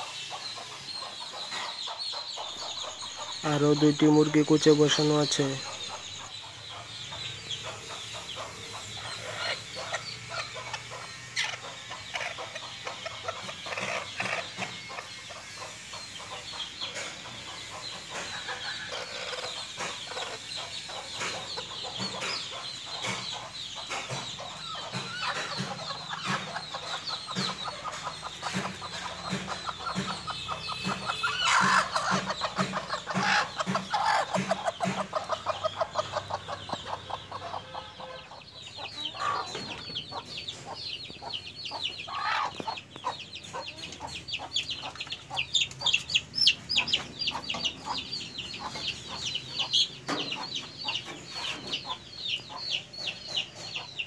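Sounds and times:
chickens clucking: 0:00.0 - 0:54.0.

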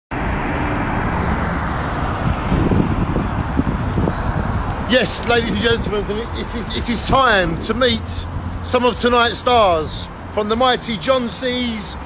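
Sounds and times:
bus engine and tyre rumble: 0:00.1 - 0:12.0.

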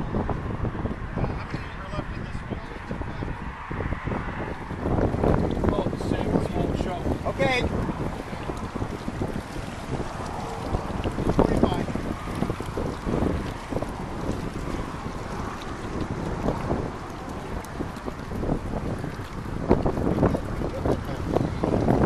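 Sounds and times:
water flowing: 0:00.0 - 0:22.0
wind buffeting microphone: 0:00.0 - 0:22.0.

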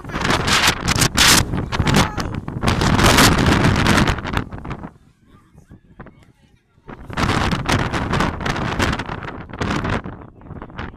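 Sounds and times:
strong wind buffeting microphone: 0:00.0 - 0:10.9.

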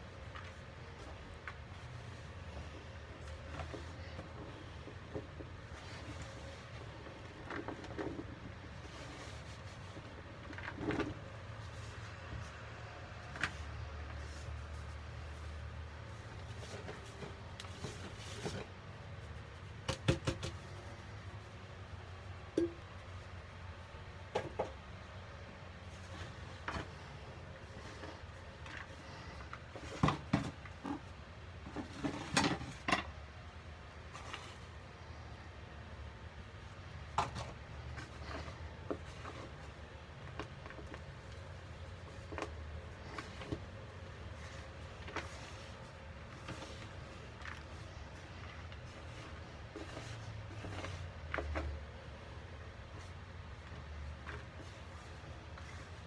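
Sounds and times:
low steady hum: 0:00.0 - 0:56.0.

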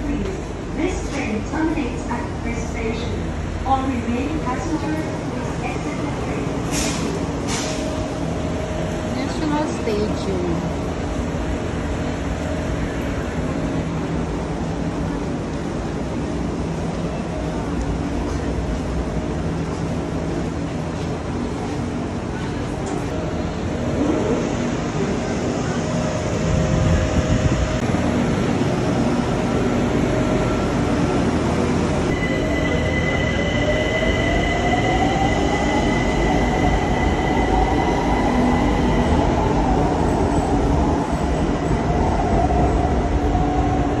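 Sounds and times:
train wheels rumbling on rail: 0:00.0 - 0:44.0.

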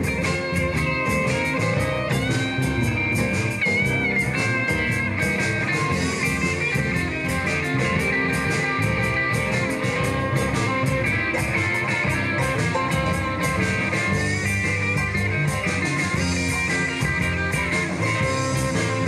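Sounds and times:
electric guitars: 0:00.0 - 0:19.0
live blues band playing: 0:00.0 - 0:19.0.

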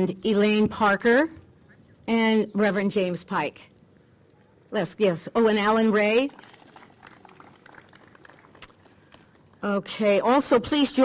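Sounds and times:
faint outdoor background noise: 0:00.0 - 0:11.0
small crackles: 0:03.6 - 0:04.7.

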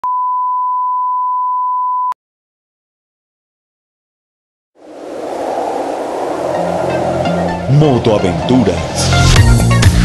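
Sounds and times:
sine test tone: 0:00.0 - 0:02.2.

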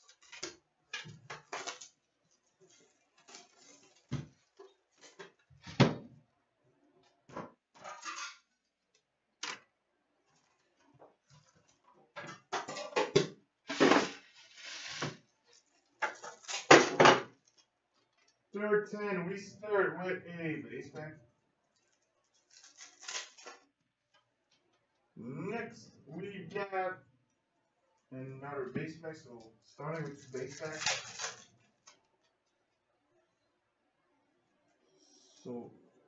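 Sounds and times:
foil packs rustling: 0:01.3 - 0:05.4, 0:22.3 - 0:23.6, 0:29.8 - 0:31.7.

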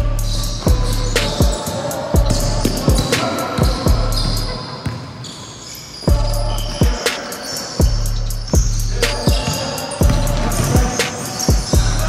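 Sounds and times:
basketball bouncing on gym floor: 0:00.6 - 0:05.2, 0:09.3 - 0:11.9.

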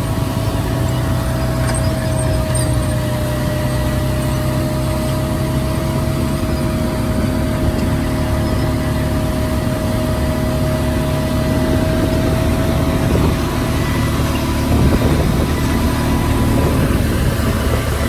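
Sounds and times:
high whine: 0:00.0 - 0:18.0
tractor diesel engine running: 0:00.0 - 0:18.0.

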